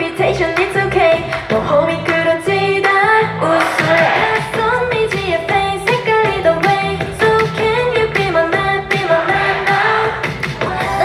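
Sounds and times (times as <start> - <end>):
female vocals singing pop song: 0.0 - 11.0
pop backing track with beat: 0.0 - 11.0.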